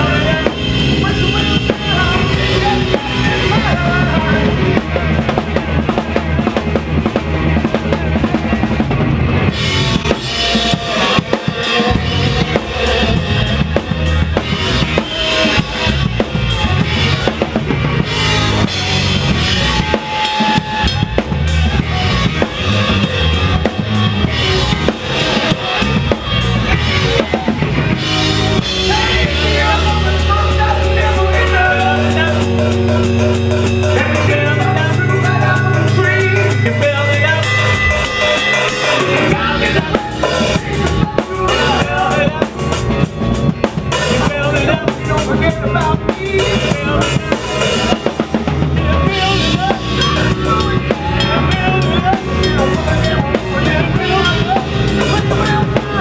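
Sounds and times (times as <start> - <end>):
drum kit beat: 0.0 - 56.0
electric guitars: 0.0 - 56.0
rock band playing: 0.0 - 56.0.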